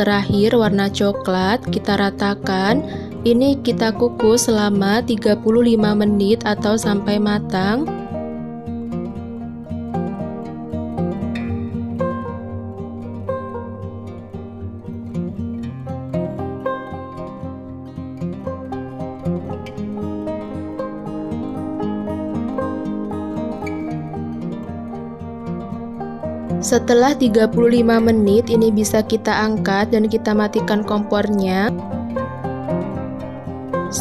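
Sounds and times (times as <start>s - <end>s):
plucked-string instrumental music: 0.0s - 34.0s.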